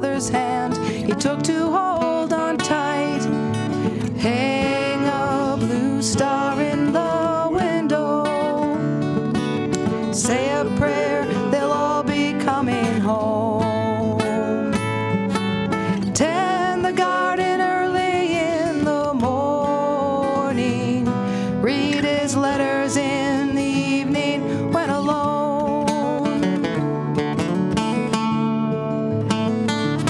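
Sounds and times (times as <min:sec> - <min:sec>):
person singing: 0:00.0 - 0:15.2, 0:15.9 - 0:27.0
acoustic guitars playing: 0:00.0 - 0:30.0.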